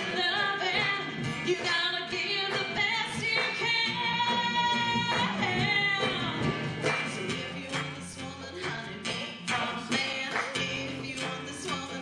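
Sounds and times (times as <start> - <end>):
acoustic guitar: 0.0 - 12.0
percussion: 0.0 - 12.0
woman singing: 0.0 - 12.0.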